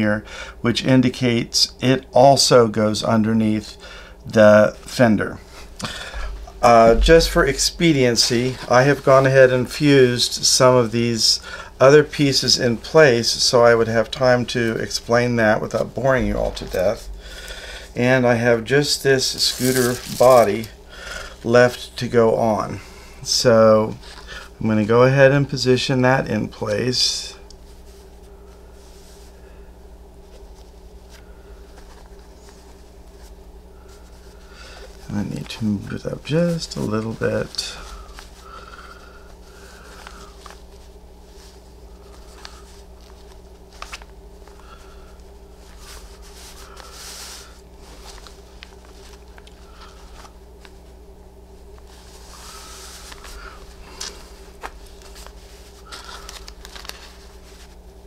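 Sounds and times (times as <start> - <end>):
steady low hum: 0.0 - 58.0
fabric rustling and scraping: 5.5 - 9.5, 18.8 - 20.7, 30.2 - 35.6, 36.2 - 58.0.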